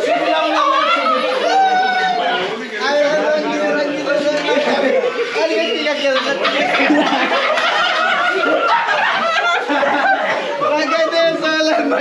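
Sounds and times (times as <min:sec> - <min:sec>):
group of people laughing: 0:00.0 - 0:12.0.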